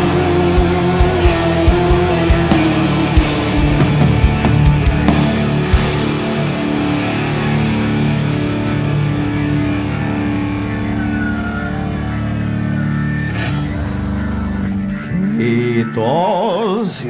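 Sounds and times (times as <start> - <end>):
doom metal band playing live: 0.0 - 17.0.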